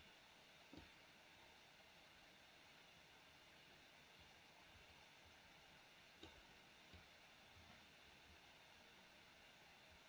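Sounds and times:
faint steady hiss: 0.0 - 10.0
computer mouse clicks: 6.2 - 7.1.

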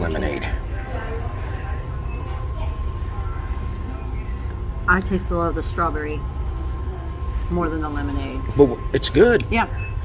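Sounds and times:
distant voices: 0.0 - 10.0
thin high hum: 0.0 - 10.0.

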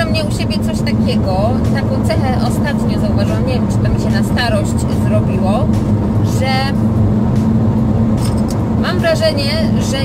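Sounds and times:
car interior drone: 0.0 - 10.0.

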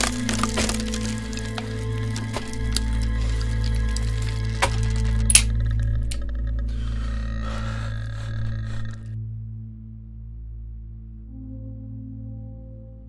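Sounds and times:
sharp crack: 0.0 - 6.2
crackling clicks: 0.0 - 6.7
deep ambient drone: 0.0 - 13.0.

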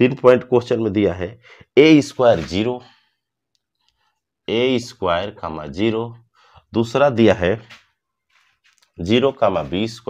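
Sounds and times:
man speaking: 0.0 - 3.0, 4.5 - 7.8, 9.0 - 10.0.

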